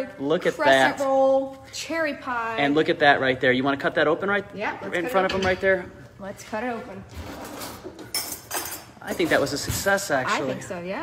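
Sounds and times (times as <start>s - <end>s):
metal utensils clinking: 7.3s - 9.6s.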